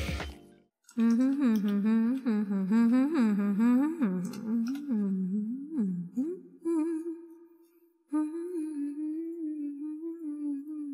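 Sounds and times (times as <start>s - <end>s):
woman humming: 1.0s - 7.5s, 8.1s - 10.9s.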